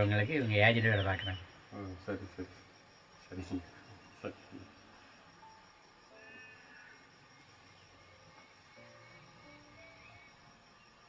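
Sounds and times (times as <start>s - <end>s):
crickets chirping: 0.0s - 11.0s
faint music: 0.0s - 11.0s.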